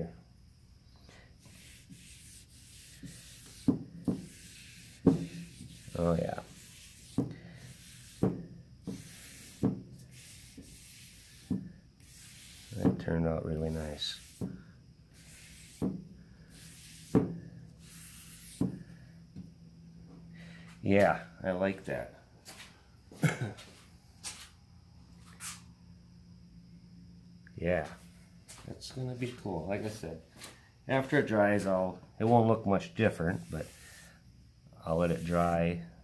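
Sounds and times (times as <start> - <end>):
hand rubbing wooden board: 1.4 - 19.5, 33.0 - 34.2, 34.9 - 35.6.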